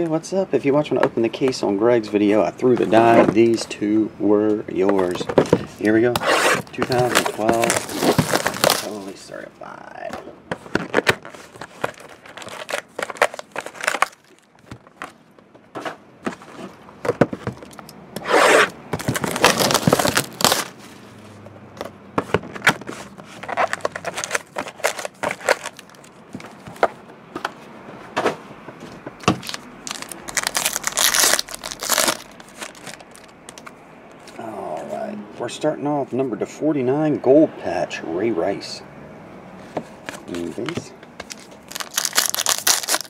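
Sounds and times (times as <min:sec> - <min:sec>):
foil packs crinkling and rustling: 0:05.0 - 0:09.3, 0:10.7 - 0:15.3, 0:19.0 - 0:20.8, 0:22.6 - 0:26.8, 0:29.2 - 0:34.4, 0:40.2 - 0:43.0
foil packs tearing: 0:06.2 - 0:09.2, 0:10.8 - 0:14.6, 0:18.4 - 0:20.8, 0:23.5 - 0:26.1, 0:29.4 - 0:33.3, 0:41.3 - 0:43.0.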